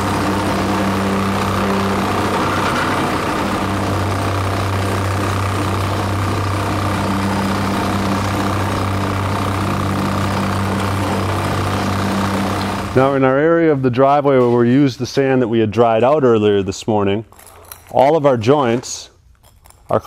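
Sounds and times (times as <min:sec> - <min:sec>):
plate compactor humming: 0:00.0 - 0:13.5.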